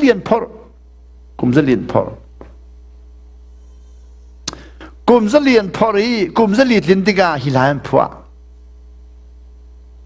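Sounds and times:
man speaking with room echo: 0.0s - 2.6s, 4.4s - 8.4s
electrical mains hum: 0.0s - 10.0s.

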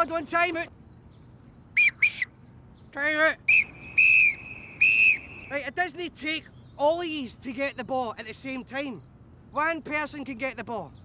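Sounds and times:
sports whistle blasts: 1.8s - 2.3s, 3.5s - 5.6s.

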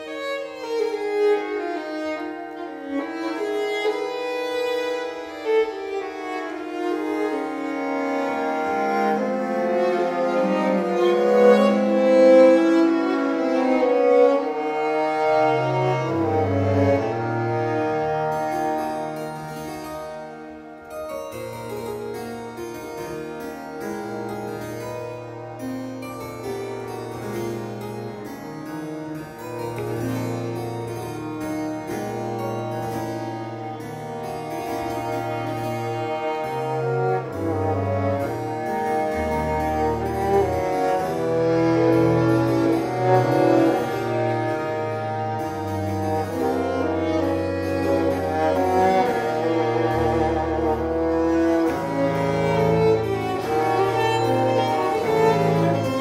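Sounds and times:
viola: 0.0s - 56.0s
violins: 0.0s - 56.0s
harpsichord rapid figures: 18.3s - 56.0s
viola da gamba held bass notes: 29.7s - 56.0s.

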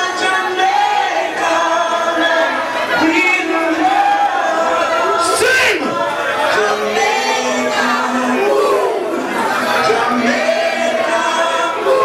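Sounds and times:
group of people singing: 0.0s - 12.0s.

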